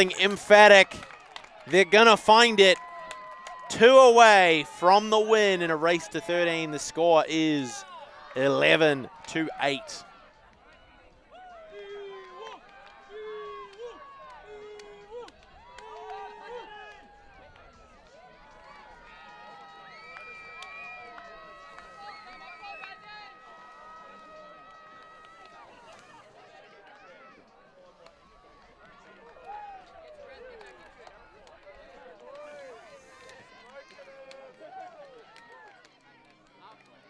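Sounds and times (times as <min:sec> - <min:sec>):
distant players' voices and calls: 0:00.0 - 0:02.9, 0:03.6 - 0:17.9.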